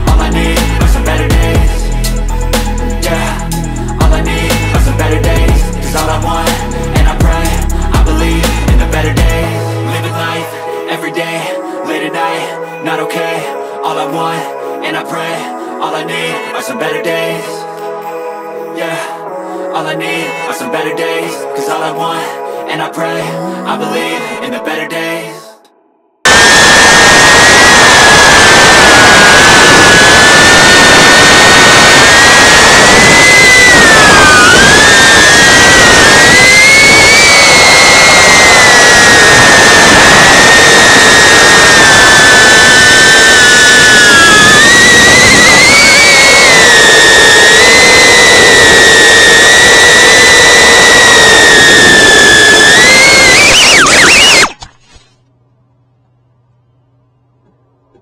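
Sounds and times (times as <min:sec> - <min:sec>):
drone motors whining: 0:26.3 - 0:55.0.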